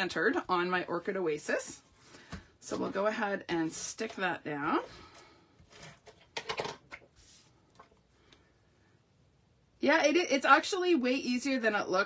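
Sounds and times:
paper rustling and sliding: 5.6 - 8.0.

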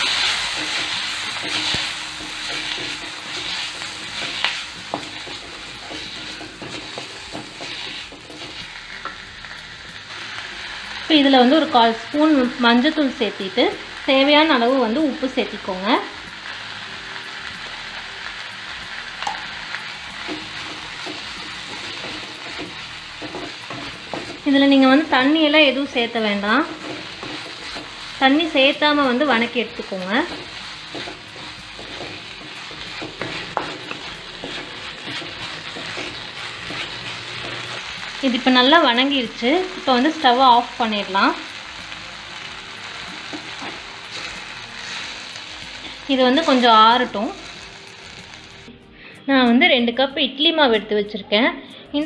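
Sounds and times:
spatula tapping a pan: 0.0 - 9.2, 30.2 - 37.8
spatula stirring in pan: 0.0 - 11.0, 19.2 - 46.7
vegetables sizzling in oil: 0.0 - 48.8.

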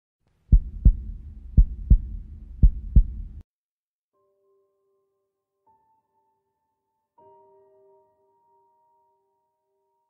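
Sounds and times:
heartbeat sound effect: 0.5 - 3.4
low rumble: 0.5 - 3.4.

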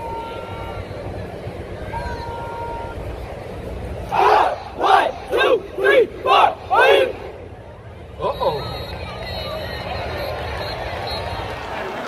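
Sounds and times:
low background hum: 0.0 - 12.0
group of voices shouting in unison: 4.1 - 7.2.

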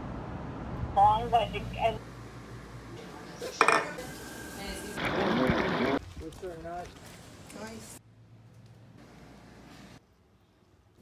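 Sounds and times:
dishes and cutlery clinking: 3.5 - 4.0.

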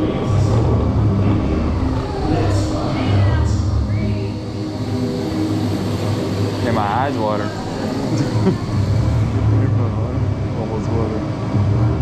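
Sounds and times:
roller coaster rolling on track: 0.0 - 12.0.

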